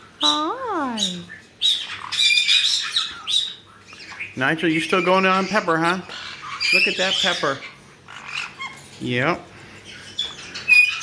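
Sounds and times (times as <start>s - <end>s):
parrot squawking: 0.0s - 11.0s.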